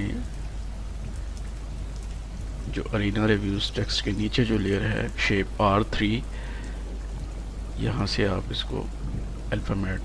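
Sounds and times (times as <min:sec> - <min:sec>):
low electrical hum: 0:00.0 - 0:10.0
recording hiss: 0:00.0 - 0:10.0.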